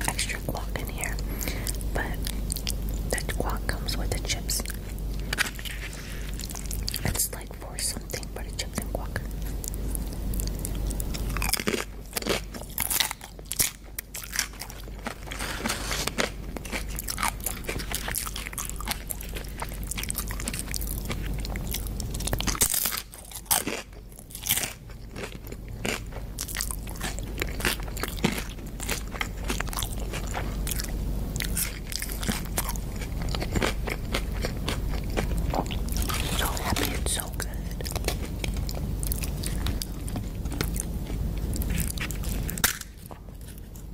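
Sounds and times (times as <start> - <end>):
chewing crunchy food: 0.0 - 43.9.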